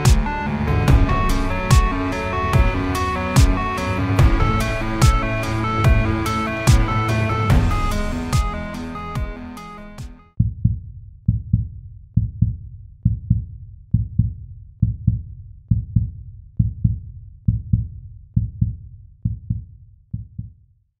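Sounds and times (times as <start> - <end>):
heartbeat double thumps: 0.0 - 20.5.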